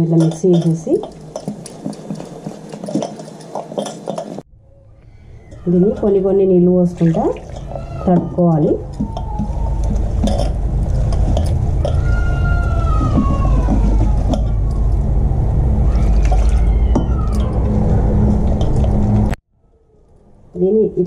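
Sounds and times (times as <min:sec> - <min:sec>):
steady low hum: 0:00.0 - 0:19.4
faint wavering tones: 0:03.0 - 0:20.8.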